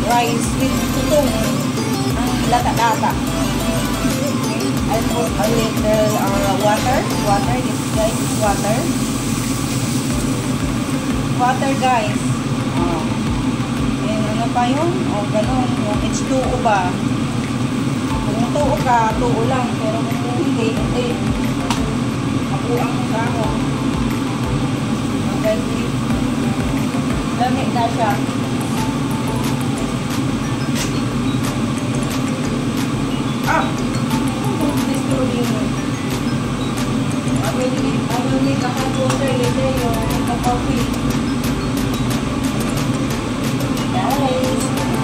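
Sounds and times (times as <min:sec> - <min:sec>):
low droning hum: 0:00.0 - 0:45.0.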